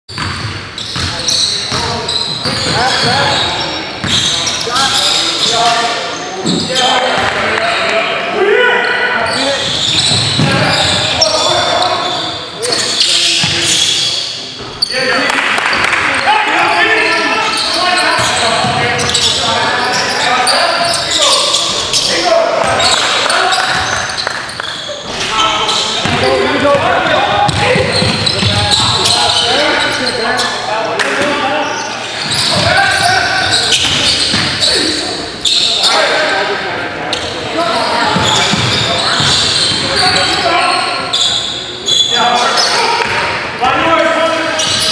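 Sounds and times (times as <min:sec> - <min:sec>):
basketball bouncing on court floor: 0:00.1 - 0:01.1, 0:26.0 - 0:26.8, 0:27.4 - 0:28.7, 0:38.1 - 0:39.9
players calling out: 0:00.2 - 0:44.9.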